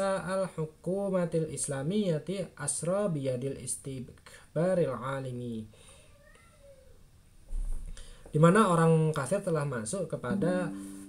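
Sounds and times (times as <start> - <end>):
cat meowing faintly: 5.9 - 7.0.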